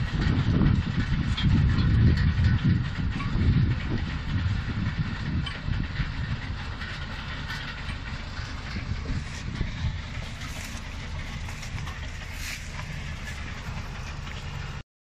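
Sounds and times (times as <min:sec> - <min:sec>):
harvester machinery clattering: 0:00.0 - 0:14.8
tractor engine running: 0:00.0 - 0:14.8.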